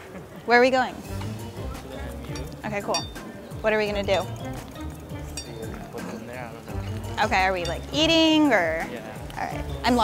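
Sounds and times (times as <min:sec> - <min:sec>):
background music with bass line: 0:01.1 - 0:10.0.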